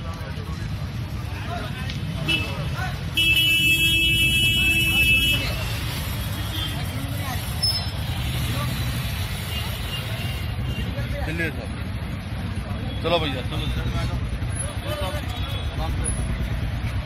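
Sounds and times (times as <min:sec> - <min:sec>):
crowd voices: 0:00.0 - 0:17.0
street traffic rumble: 0:00.0 - 0:17.0
vehicle horn blast: 0:03.2 - 0:05.6.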